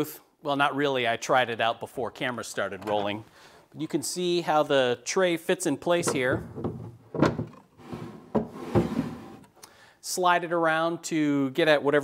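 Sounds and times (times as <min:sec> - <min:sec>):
wooden knocks: 0:06.0 - 0:09.2
wooden tray sliding on wood: 0:06.1 - 0:09.5.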